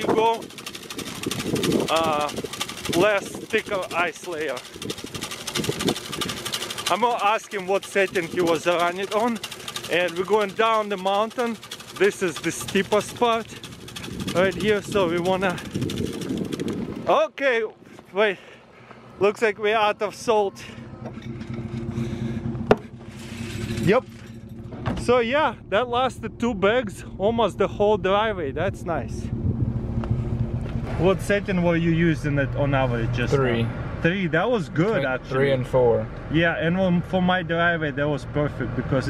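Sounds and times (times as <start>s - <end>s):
salt spreader clattering: 0.0s - 16.8s
truck engine idling: 0.0s - 17.1s, 17.8s - 38.7s.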